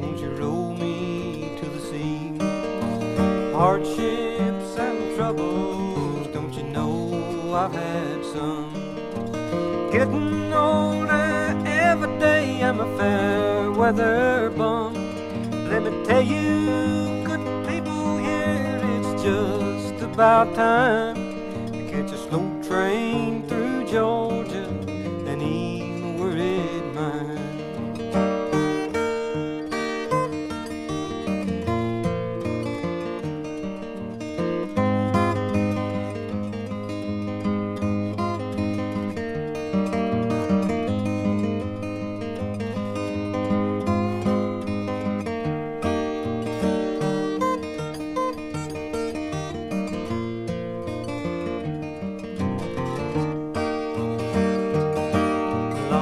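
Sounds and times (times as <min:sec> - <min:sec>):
flatpicked acoustic guitar: 0:00.0 - 0:56.0.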